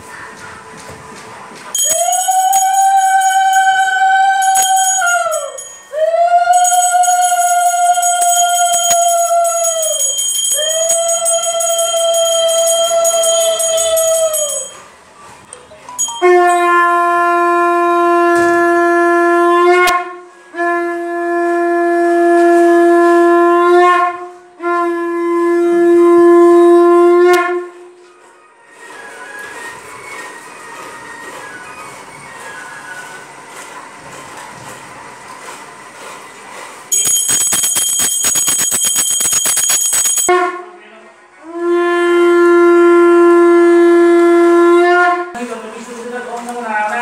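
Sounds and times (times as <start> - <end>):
hand bell ringing rapidly: 1.8 - 3.7, 4.3 - 14.9, 36.9 - 40.3
conch shell blasts: 16.2 - 27.8, 36.9 - 40.8.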